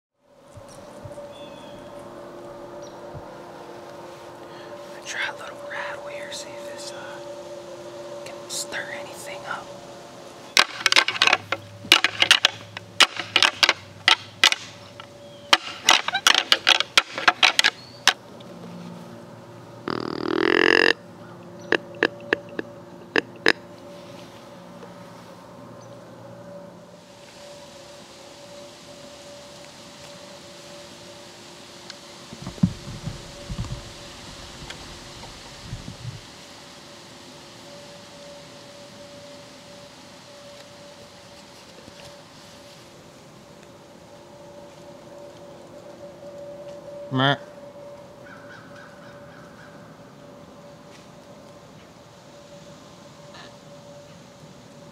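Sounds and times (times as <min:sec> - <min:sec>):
deer call rising pitch: 0:00.8 - 0:17.8, 0:19.1 - 0:25.3, 0:43.9 - 0:50.0, 0:53.0 - 0:54.2
antlers clacking and grinding: 0:10.6 - 0:17.8
low thumps: 0:32.3 - 0:36.2.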